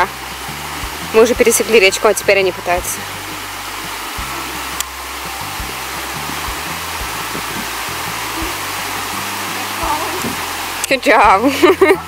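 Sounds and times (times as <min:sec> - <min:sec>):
stream running over rocks: 0:00.0 - 0:12.0.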